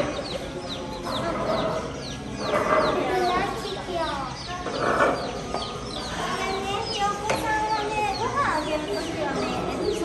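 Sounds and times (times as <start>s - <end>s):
baby chicks peeping: 0.0s - 10.0s
children's voices: 1.0s - 10.0s.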